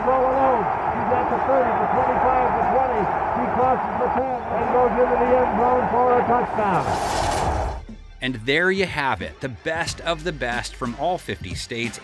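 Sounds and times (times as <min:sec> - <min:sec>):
stadium crowd noise: 0:00.0 - 0:07.4.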